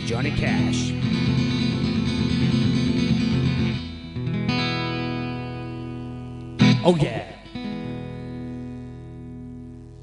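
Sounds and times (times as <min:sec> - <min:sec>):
acoustic guitar chord ringing: 0:00.2 - 0:09.8.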